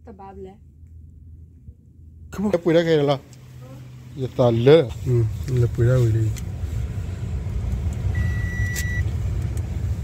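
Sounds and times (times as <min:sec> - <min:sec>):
car engine and tyres rumbling: 0:02.2 - 0:10.0
high beep: 0:08.2 - 0:09.0.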